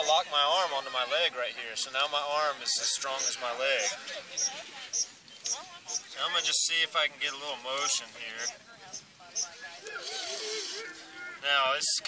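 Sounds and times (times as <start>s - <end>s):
bow drill spindle scraping wood: 9.8s - 11.0s.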